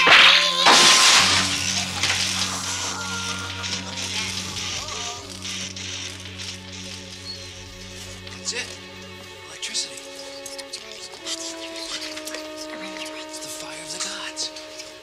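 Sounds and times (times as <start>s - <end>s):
low film score drone: 0.0s - 15.0s.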